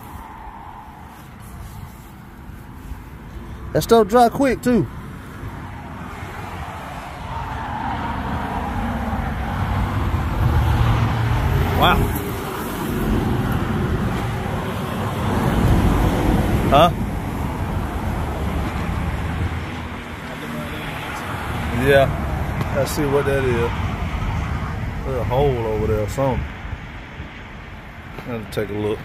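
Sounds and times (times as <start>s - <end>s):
motor vehicle rumble: 0.0s - 29.0s.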